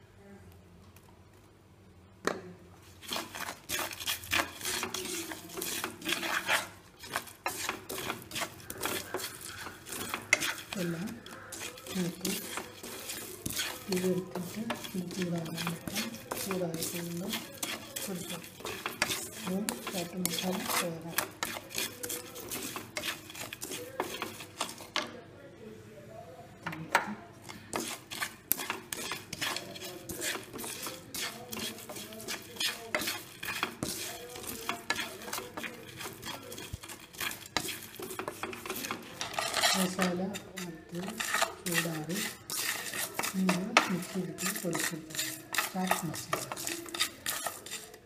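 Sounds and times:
spatula scraping spices in pan: 2.8s - 25.2s, 26.7s - 48.0s.

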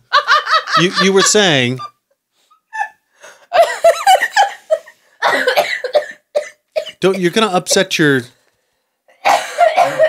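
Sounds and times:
woman laughing: 2.7s - 5.5s
woman coughing: 3.6s - 4.6s, 5.2s - 7.0s, 9.2s - 10.0s.

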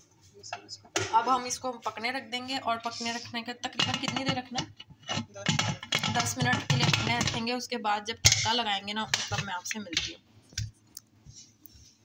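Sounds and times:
woman speaking: 1.1s - 4.7s, 6.0s - 10.2s.

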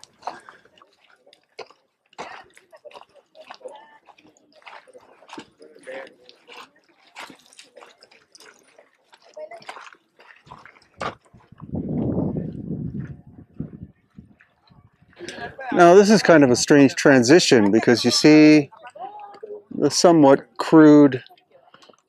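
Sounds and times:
faint chatter of people: 0.0s - 22.0s.

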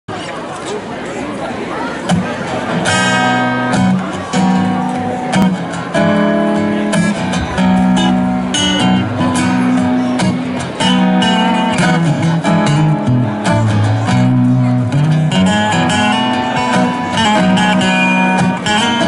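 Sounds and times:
acoustic guitars strumming: 2.1s - 19.0s
upright bass notes: 5.0s - 16.3s.

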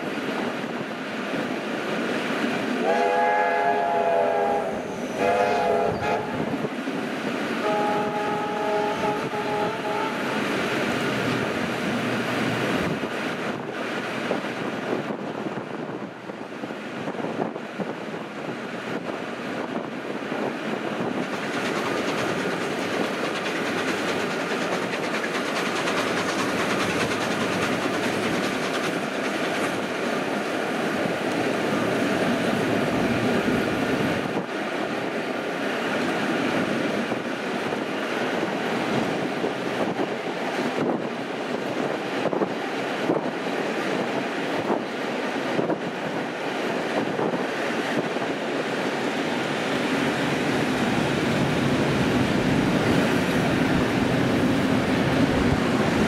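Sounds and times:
rail clickety-clack: 0.0s - 56.0s
train running noise: 0.0s - 56.0s
train whistle blasts: 2.8s - 6.4s, 7.6s - 10.4s.

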